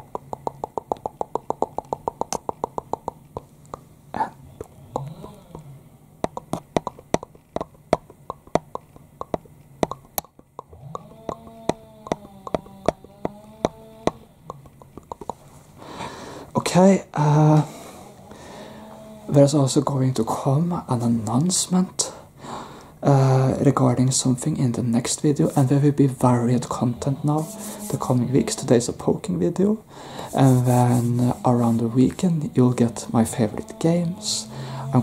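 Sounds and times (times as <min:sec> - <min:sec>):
steady low background hum: 0:00.0 - 0:35.0
short hummed tone: 0:03.8 - 0:14.9, 0:26.3 - 0:28.9, 0:30.4 - 0:35.0.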